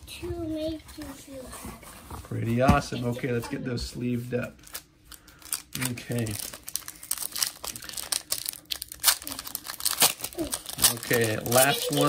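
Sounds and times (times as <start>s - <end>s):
foil wrapper tearing and crinkling: 4.6s - 12.0s.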